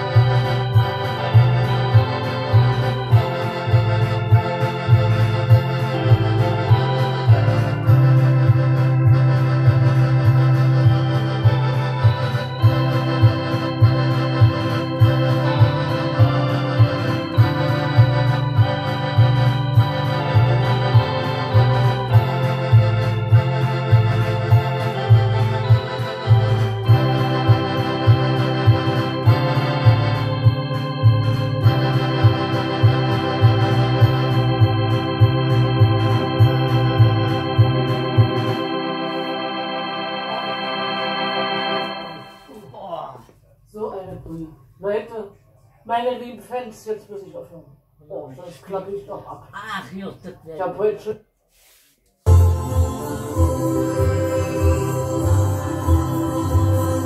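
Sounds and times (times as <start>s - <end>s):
electronic keyboards playing: 0.0s - 42.8s, 52.3s - 57.0s.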